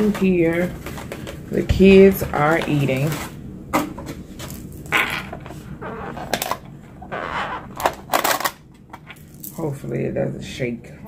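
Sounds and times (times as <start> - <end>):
plastic packaging crinkling: 0.0 - 3.4.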